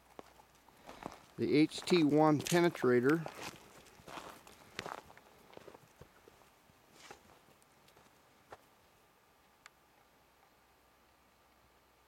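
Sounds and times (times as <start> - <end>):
footsteps on dry grass: 0.0 - 8.7.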